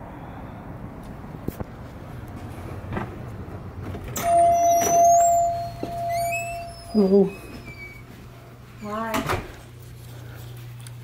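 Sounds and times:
high door squeaks: 4.2s - 8.1s.

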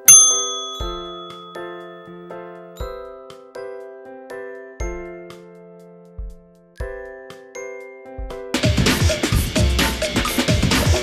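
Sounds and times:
bell-like ding: 0.0s - 2.2s
light instrumental music with beat: 0.0s - 11.0s.

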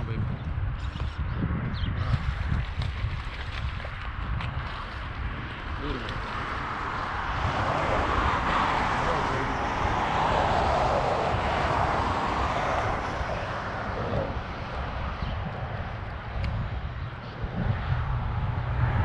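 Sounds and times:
low microphone rumble: 0.0s - 19.0s
passing engine rushing: 5.8s - 19.0s.

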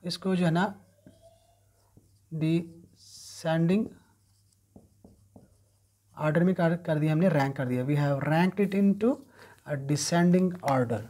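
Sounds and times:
marker writing on whiteboard: 0.1s - 11.0s.

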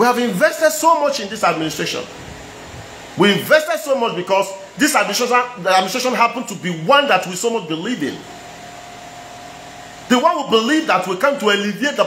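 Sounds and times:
room hiss and hum: 0.0s - 12.0s
man's voice: 3.2s - 8.2s, 10.1s - 12.0s.

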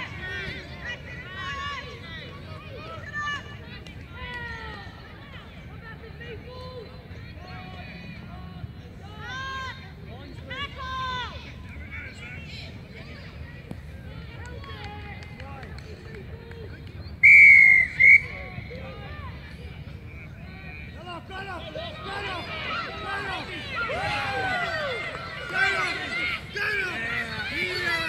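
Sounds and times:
referee's whistle blasts: 17.2s - 18.5s
spectators shouting: 21.0s - 28.0s.

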